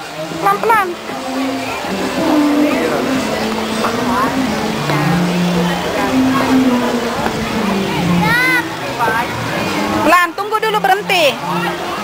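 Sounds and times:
faint voices: 0:00.0 - 0:12.0
water cascading into fountain basin: 0:00.0 - 0:12.0.

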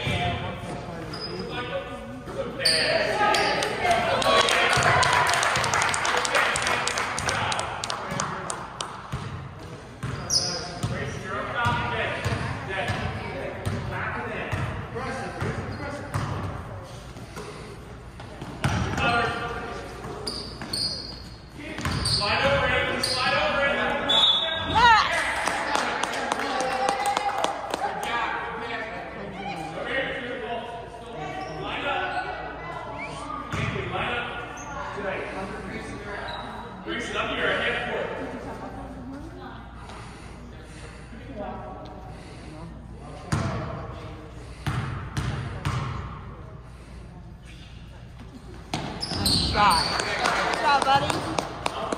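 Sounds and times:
basketball bouncing on gym floor: 0:09.1 - 0:11.0, 0:11.6 - 0:13.9, 0:14.5 - 0:14.8, 0:15.4 - 0:16.6, 0:18.4 - 0:19.1, 0:21.7 - 0:22.7, 0:44.6 - 0:46.1, 0:48.7 - 0:49.8
echoing voices: 0:46.3 - 0:51.9.

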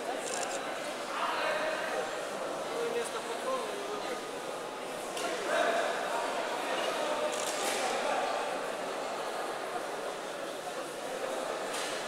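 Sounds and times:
echoing chatter of many voices: 0:00.0 - 0:12.0.

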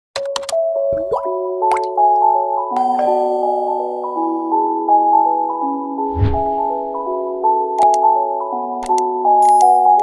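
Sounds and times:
rising glide: 0:06.0 - 0:06.9.

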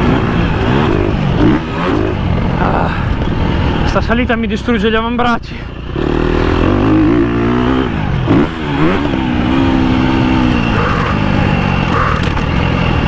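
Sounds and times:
motocross bike engine revving: 0:00.0 - 0:04.6, 0:05.6 - 0:13.0.

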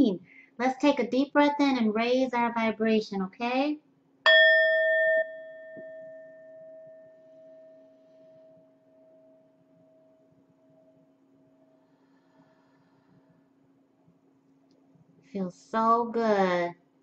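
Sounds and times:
singing bowl ringing: 0:04.3 - 0:11.8.

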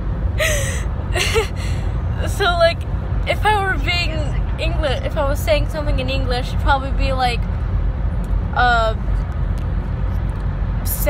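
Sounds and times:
car cabin road noise: 0:00.0 - 0:11.0
woman laughing hard: 0:00.4 - 0:01.8.

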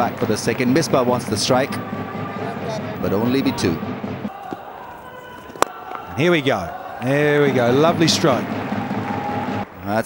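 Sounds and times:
stadium crowd murmur: 0:00.0 - 0:10.0.

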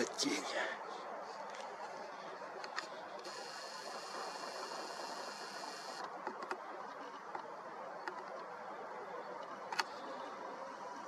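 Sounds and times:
low background hiss: 0:00.0 - 0:11.0
lens zoom motor whine: 0:03.2 - 0:06.1
faint clicks: 0:05.9 - 0:08.5.

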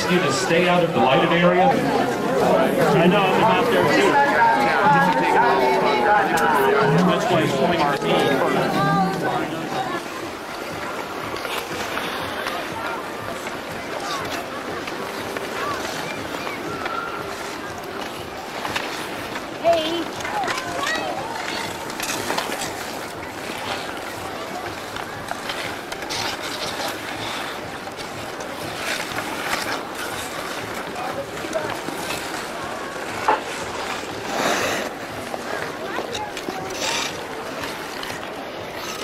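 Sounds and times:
faint background voices: 0:00.0 - 0:39.0
skate blades scraping ice: 0:00.0 - 0:39.0.

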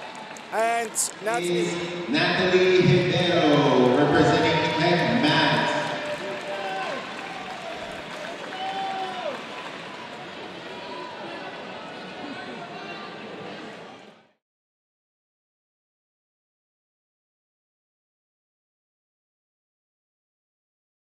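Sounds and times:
crowd chatter echoing in a hall: 0:00.0 - 0:14.4.

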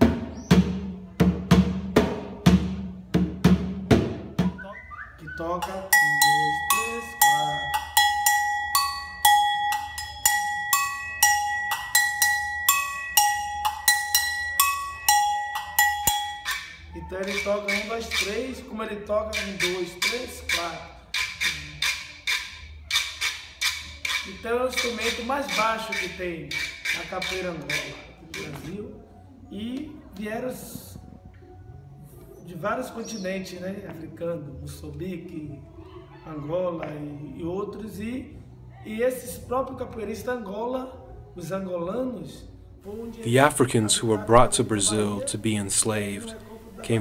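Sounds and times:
hand percussion strokes: 0:05.6 - 0:18.4, 0:19.3 - 0:28.6.

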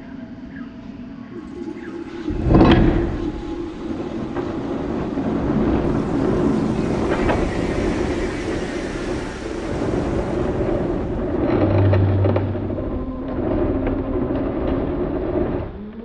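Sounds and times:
dense low rumble with hiss: 0:00.0 - 0:16.0.

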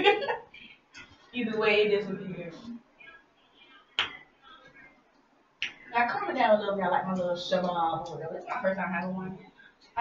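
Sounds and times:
finger snaps: 0:04.0 - 0:04.2, 0:05.6 - 0:05.8.

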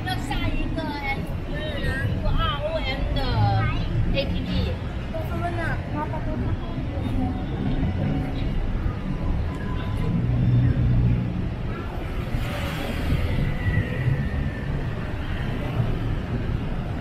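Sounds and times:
voices of passers-by: 0:00.0 - 0:17.0.

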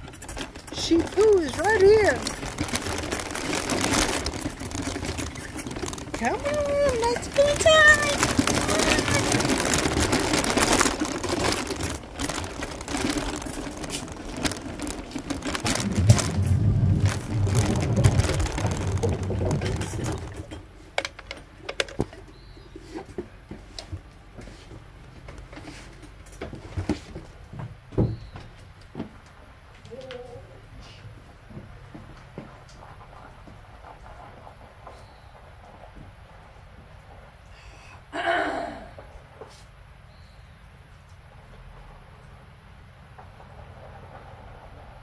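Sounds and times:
wheelchair rolling over rough path: 0:00.0 - 0:29.8, 0:31.3 - 0:37.5.

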